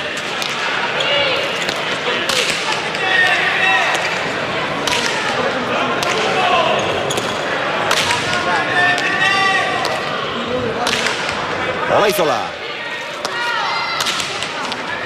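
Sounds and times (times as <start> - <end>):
crowd voices and shouts: 0.0 - 15.0.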